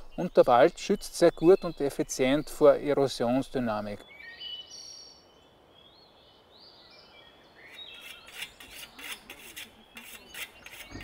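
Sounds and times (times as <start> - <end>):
metal tool blade scraping: 7.8 - 11.0.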